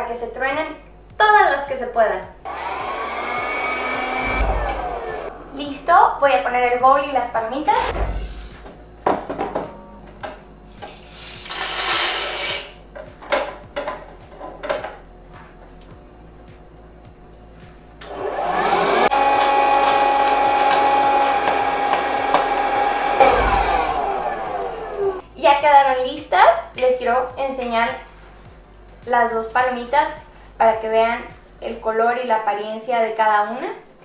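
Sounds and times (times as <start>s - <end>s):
popcorn popper fan whine: 2.5s - 5.4s, 18.0s - 25.2s.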